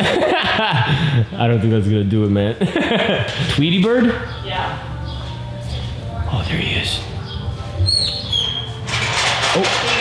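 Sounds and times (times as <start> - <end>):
small bird chirping: 7.2 - 8.7.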